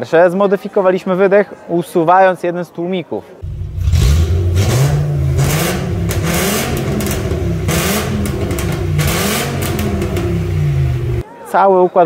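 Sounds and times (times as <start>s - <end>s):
car engine revving in blips: 3.4s - 11.2s.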